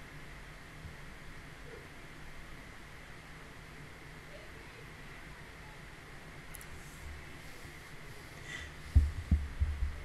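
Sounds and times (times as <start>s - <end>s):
faint high whine: 0.0s - 10.0s
soft low thumps: 8.7s - 10.0s.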